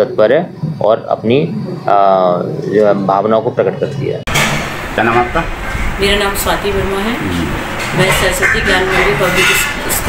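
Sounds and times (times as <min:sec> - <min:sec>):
low rumble with hiss: 0:00.0 - 0:10.0
person speaking: 0:06.0 - 0:08.6.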